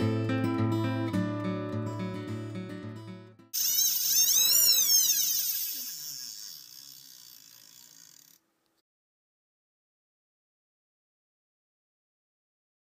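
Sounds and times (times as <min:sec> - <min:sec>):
acoustic guitar music: 0:00.0 - 0:03.5
high whirring sweeping in pitch: 0:03.6 - 0:08.4.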